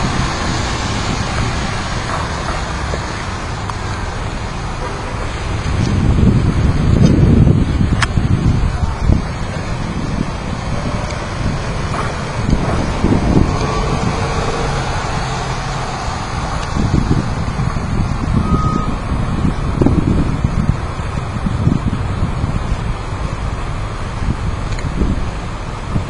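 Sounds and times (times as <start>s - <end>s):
road traffic passing: 0.0s - 26.0s
wind buffeting microphone: 0.0s - 26.0s.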